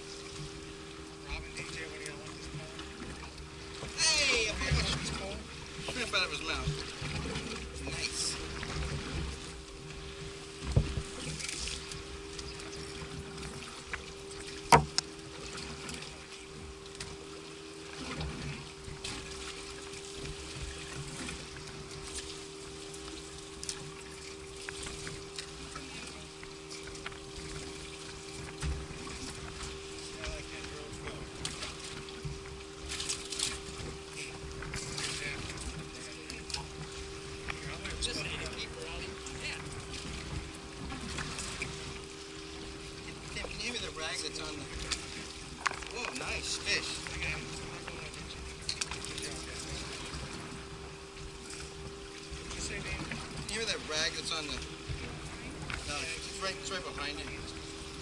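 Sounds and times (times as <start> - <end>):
steady low hum: 0.0 - 58.0
water noise around boat: 0.0 - 58.0
wind: 0.0 - 58.0.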